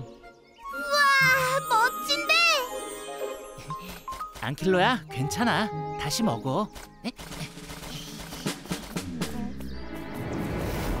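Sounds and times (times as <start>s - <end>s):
background music: 0.0s - 7.7s
swoosh: 9.0s - 11.0s.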